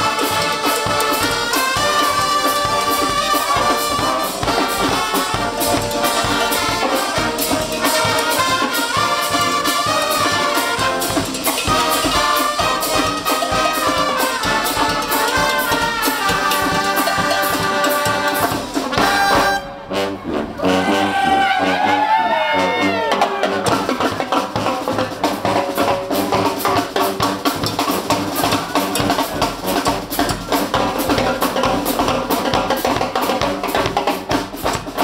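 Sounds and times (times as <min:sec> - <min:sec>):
bass drum beat: 0:00.0 - 0:19.6, 0:23.3 - 0:35.0
brass street band playing: 0:00.0 - 0:35.0.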